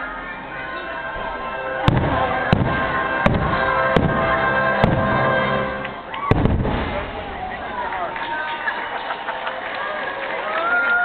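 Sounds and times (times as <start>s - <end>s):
music playing: 0.0s - 8.8s
fireworks booming: 1.2s - 8.1s.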